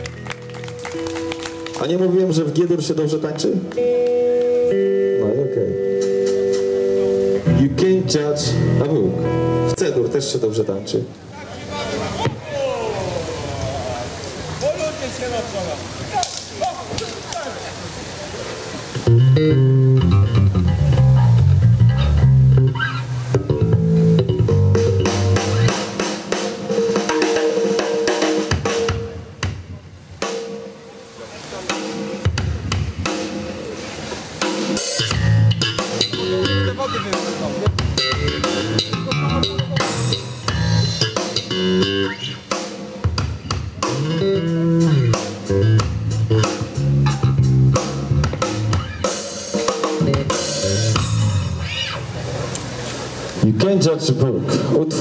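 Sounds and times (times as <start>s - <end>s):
blues band playing: 0.0s - 17.4s, 18.6s - 53.8s.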